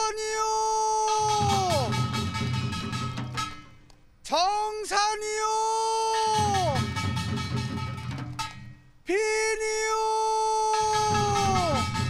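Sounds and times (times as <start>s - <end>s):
singer holding long note: 9.2s - 12.0s.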